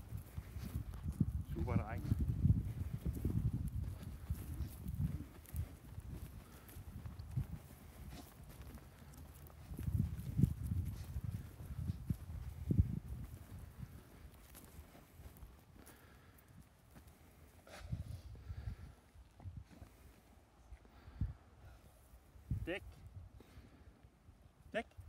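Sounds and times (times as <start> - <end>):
footsteps on loose soil: 0.0 - 17.6.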